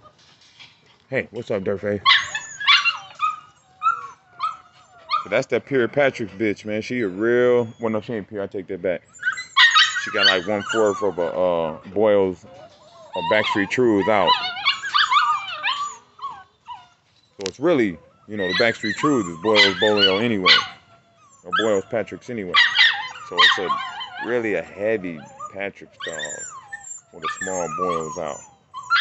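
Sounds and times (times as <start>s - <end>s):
puppy whimpering: 2.0s - 8.2s, 9.0s - 29.0s.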